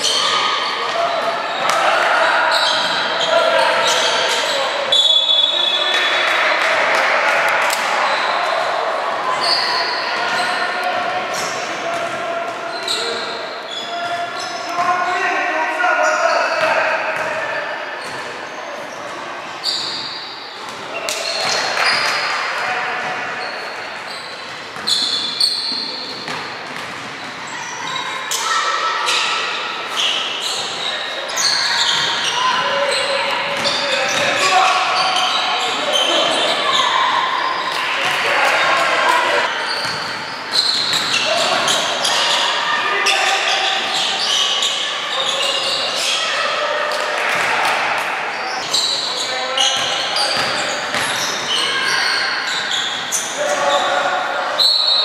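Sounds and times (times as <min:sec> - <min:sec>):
sneakers squeaking: 0:00.0 - 0:06.4, 0:07.6 - 0:55.0.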